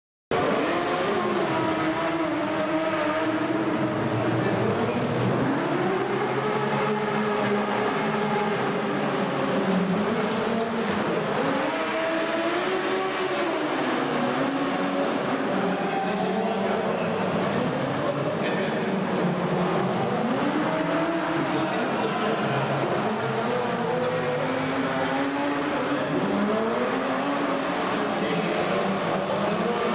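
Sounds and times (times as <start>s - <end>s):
racing engines revving: 0.3s - 29.9s.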